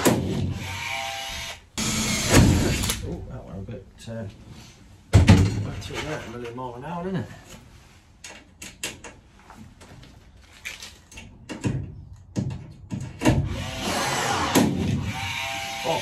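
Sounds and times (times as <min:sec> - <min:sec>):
cordless power tool running: 0:00.6 - 0:02.8
aluminium clicks and knocks: 0:11.1 - 0:13.4.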